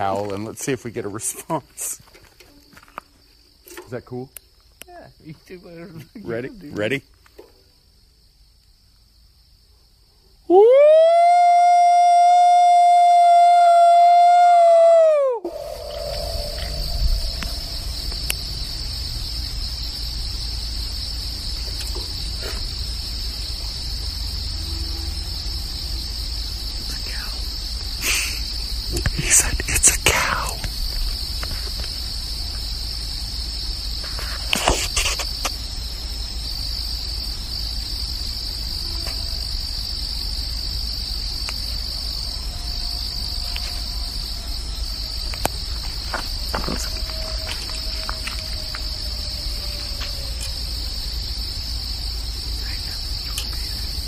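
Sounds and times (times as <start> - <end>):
night insects chorus: 0.0 - 54.0
faint falling tones: 15.4 - 19.2.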